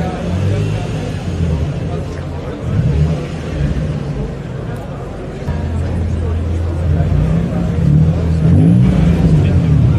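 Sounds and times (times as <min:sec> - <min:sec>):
car engine rumbling: 0:00.0 - 0:09.9
crowd chatter: 0:00.0 - 0:09.9.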